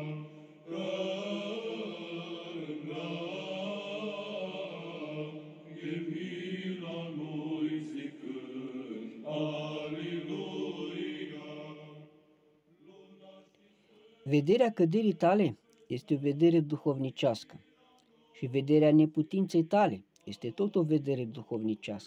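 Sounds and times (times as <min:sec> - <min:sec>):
slow religious chant: 0:00.0 - 0:22.0.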